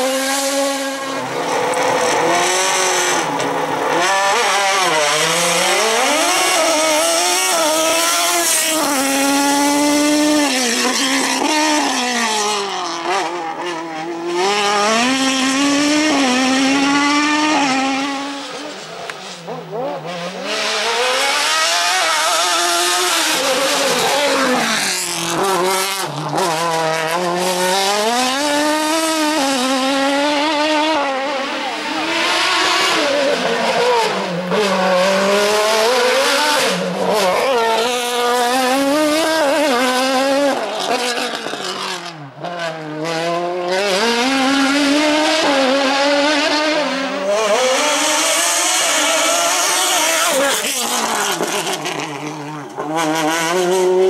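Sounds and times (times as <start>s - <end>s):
race car engine revving: 0.0s - 54.0s.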